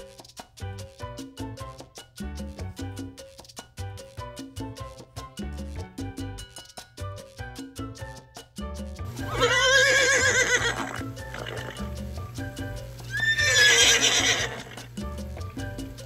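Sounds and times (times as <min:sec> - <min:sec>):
background music with beat: 0:00.0 - 0:16.0
horse whinnying: 0:09.2 - 0:11.9, 0:13.1 - 0:14.9.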